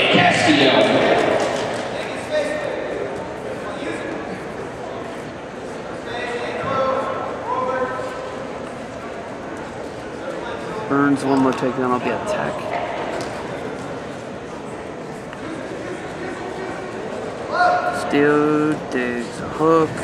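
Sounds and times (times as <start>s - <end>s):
voices echoing in a gymnasium: 0.0s - 20.0s.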